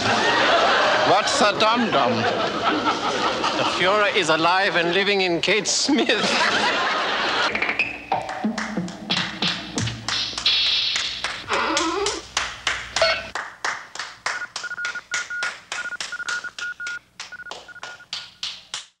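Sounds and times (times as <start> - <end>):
regular sharp clicks: 14.3 - 18.9
short high beeps: 14.4 - 18.1.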